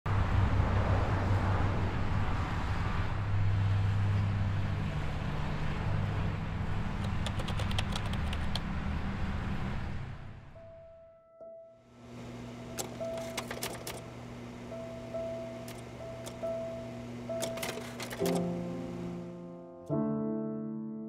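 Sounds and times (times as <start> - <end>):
road traffic rumble: 0.1 - 10.6
sharp clicks: 7.0 - 8.7, 12.8 - 14.1, 17.4 - 18.5.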